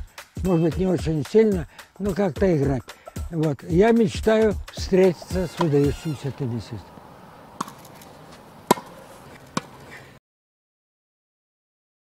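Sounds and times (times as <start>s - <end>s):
tennis ball pock: 5.0s - 10.1s.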